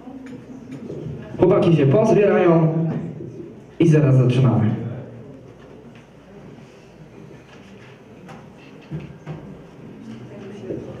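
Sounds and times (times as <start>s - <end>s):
faint background murmur: 0.0s - 11.0s.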